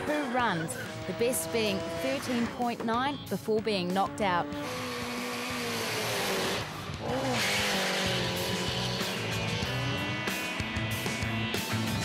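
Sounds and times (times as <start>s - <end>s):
engine at high revs: 0.0s - 2.8s, 4.0s - 12.0s
tyres squealing: 0.0s - 2.8s
background music: 0.0s - 12.0s.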